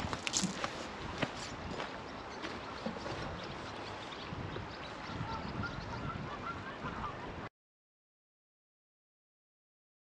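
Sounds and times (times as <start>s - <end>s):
wind noise: 0.0s - 7.5s.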